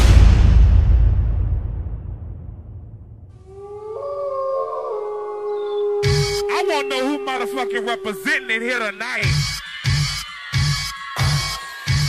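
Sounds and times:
wolf howling: 0:03.4 - 0:11.8.

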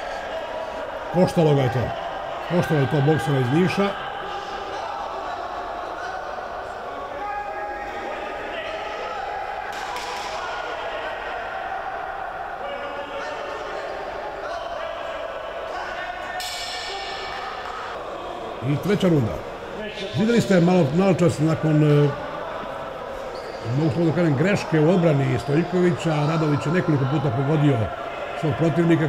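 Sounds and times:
crowd shouts: 0:00.0 - 0:29.0
crowd voices: 0:00.0 - 0:29.0.

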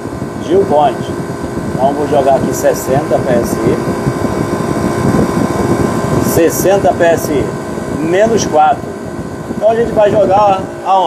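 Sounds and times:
refrigeration compressor and fans running: 0:00.0 - 0:11.0.

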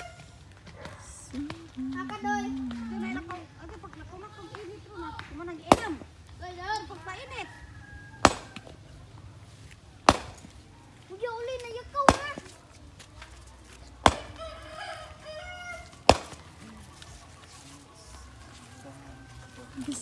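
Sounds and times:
hand tool striking rocky ground: 0:10.1 - 0:10.5, 0:16.1 - 0:16.4.

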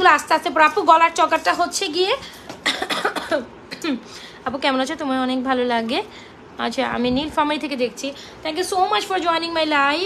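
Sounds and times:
woman talking: 0:00.0 - 0:10.0
woman coughing: 0:02.6 - 0:04.1.

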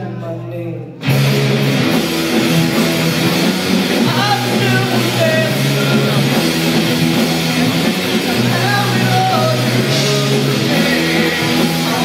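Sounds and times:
live rock band playing: 0:01.0 - 0:12.0
person singing: 0:04.0 - 0:06.6, 0:08.1 - 0:12.0.

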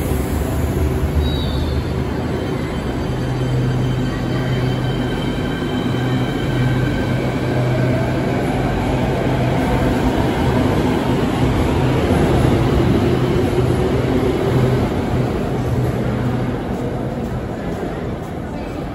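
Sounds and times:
train rolling rumble: 0:00.0 - 0:18.9.

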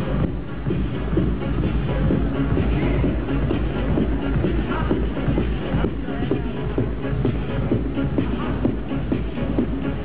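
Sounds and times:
loud techno with bass beat: 0:00.0 - 0:10.0.

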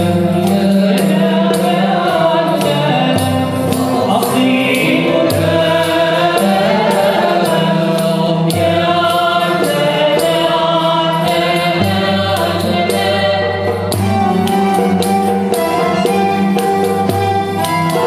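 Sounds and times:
bowed violins: 0:00.0 - 0:18.0
cello and lute melody: 0:00.0 - 0:18.0
group singing: 0:00.0 - 0:18.0
light steady percussion beat: 0:00.0 - 0:18.0.

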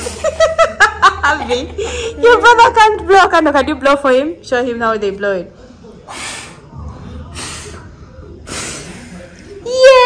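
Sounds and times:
puffs of breath blowing: 0:06.0 - 0:09.6.

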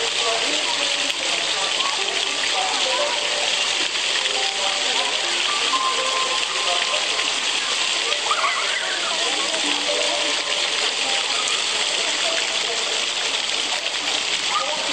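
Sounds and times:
faint voices: 0:00.0 - 0:14.9
fountain jets splashing on paving: 0:00.0 - 0:14.9.

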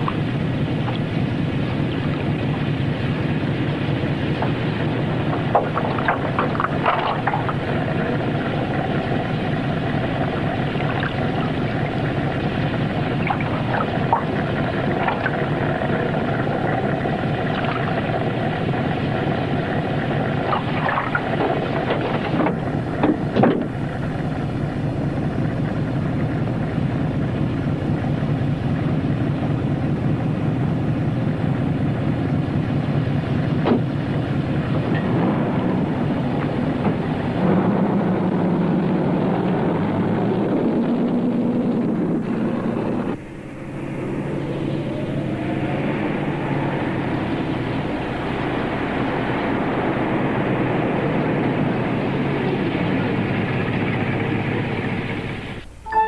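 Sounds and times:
car engine running: 0:00.0 - 0:55.9.

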